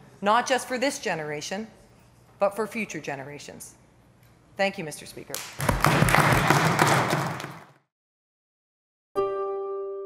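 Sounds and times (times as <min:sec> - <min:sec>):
applause: 0:05.4 - 0:07.8.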